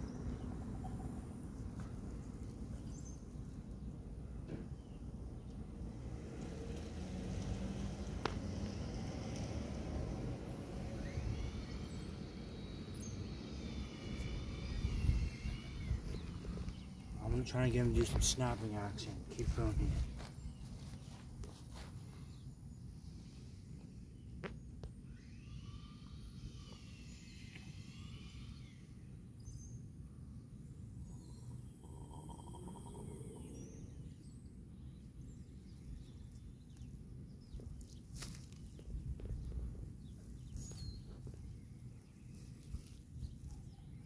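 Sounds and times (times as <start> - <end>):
birds chirping: 12.9 - 22.6, 30.5 - 44.0
steady low rumble: 13.3 - 22.2, 30.1 - 43.8.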